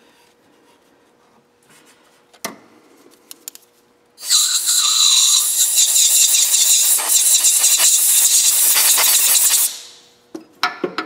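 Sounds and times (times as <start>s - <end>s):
compressed air blow gun hissing: 4.2s - 10.0s.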